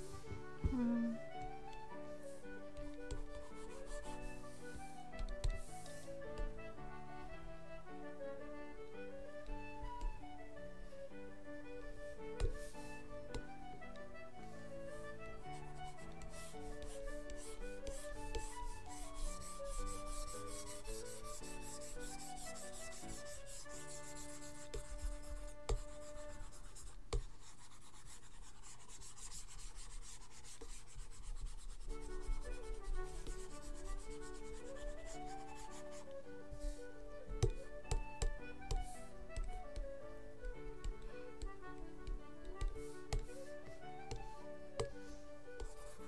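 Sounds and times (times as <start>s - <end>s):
concertina background music: 0.0s - 26.9s, 29.2s - 46.0s
stylus tapping: 2.7s - 4.2s, 5.1s - 6.6s, 12.2s - 14.1s, 15.4s - 27.4s, 30.6s - 46.0s
stylus scratching on drawing tablet: 2.8s - 6.5s, 15.5s - 36.8s, 45.6s - 46.0s.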